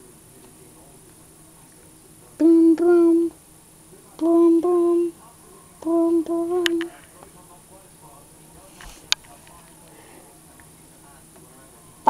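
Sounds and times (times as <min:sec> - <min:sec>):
person humming: 0:02.4 - 0:03.4, 0:04.2 - 0:05.2, 0:05.8 - 0:07.0.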